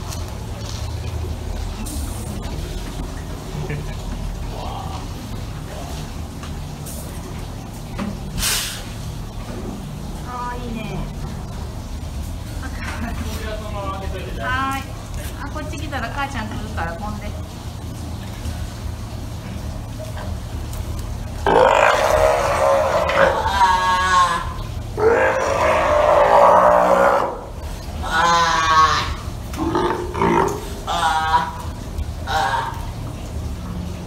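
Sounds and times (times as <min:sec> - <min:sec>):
steady low hum: 0:00.0 - 0:34.0
sea lion roaring calls: 0:21.4 - 0:33.1.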